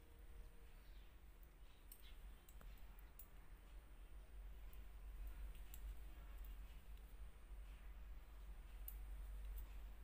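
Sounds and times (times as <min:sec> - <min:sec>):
quiet low hum: 0:00.0 - 0:10.0
knitting needles clicking: 0:01.4 - 0:10.0.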